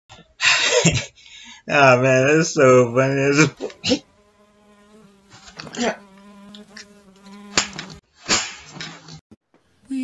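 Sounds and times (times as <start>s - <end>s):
fly buzzing: 3.2s - 8.0s
hand slap: 7.6s - 8.6s.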